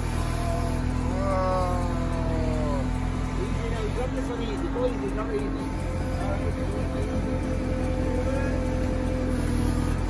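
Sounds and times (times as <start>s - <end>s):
diesel engine running: 0.0s - 10.0s
hydraulic whine: 0.0s - 10.0s.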